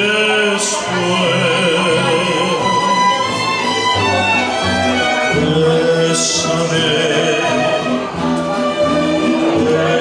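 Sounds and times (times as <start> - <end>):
mariachi band playing: 0.0 - 10.0
violins bowing melody: 0.0 - 10.0.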